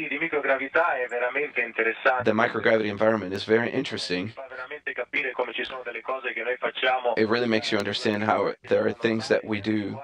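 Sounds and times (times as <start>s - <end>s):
man talking over radio: 0.0s - 10.0s.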